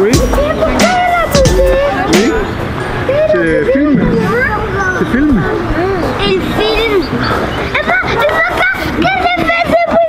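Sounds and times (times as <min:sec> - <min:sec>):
child calling wordlessly: 0:00.2 - 0:02.2.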